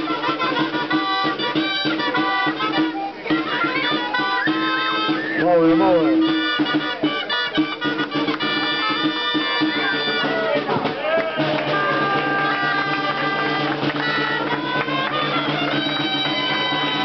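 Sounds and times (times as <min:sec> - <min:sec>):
crowd voices: 0:00.0 - 0:17.0
shawms playing held reedy notes: 0:00.0 - 0:17.0.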